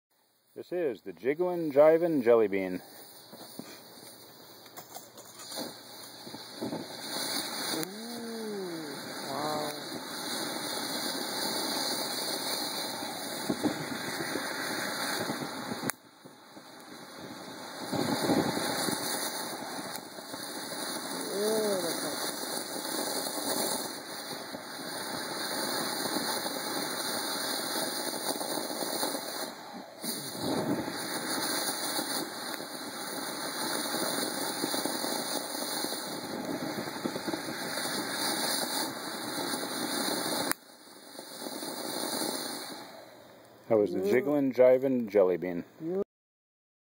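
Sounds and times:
fountain firework hissing: 0.2s - 45.4s.

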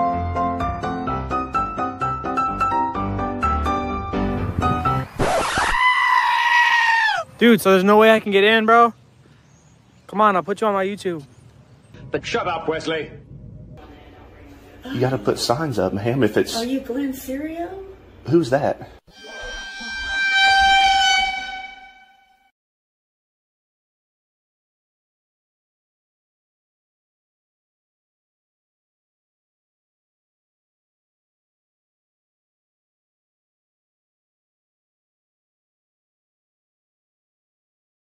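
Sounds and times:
high-pitched scream: 5.2s - 7.3s, 19.1s - 22.5s
steady horn-like tone: 19.1s - 22.5s.

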